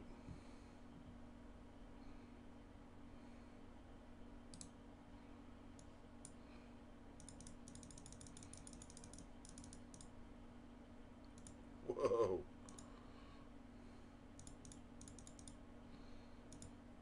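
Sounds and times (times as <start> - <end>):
low steady hum: 0.0 - 17.0
mouse and keyboard clicks: 7.2 - 10.1, 14.4 - 15.6.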